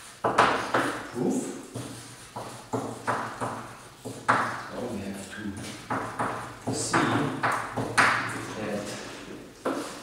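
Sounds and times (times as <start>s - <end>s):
chalk scraping on a blackboard: 0.0s - 8.4s.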